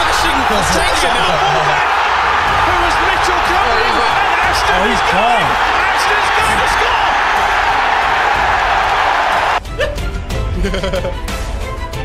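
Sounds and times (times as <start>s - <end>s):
excited tv commentary: 0.0s - 9.6s
stadium crowd roaring: 0.0s - 9.6s
music: 0.0s - 12.0s.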